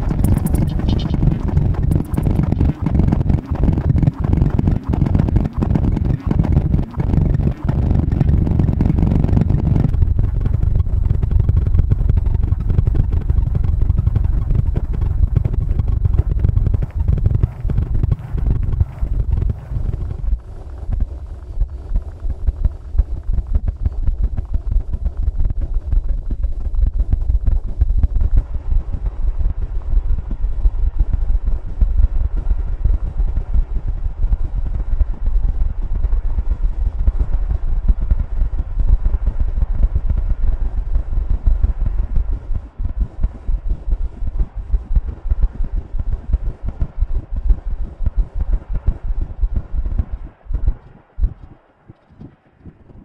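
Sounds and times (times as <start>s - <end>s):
fluttering electronic bass throb: 0.0s - 53.0s.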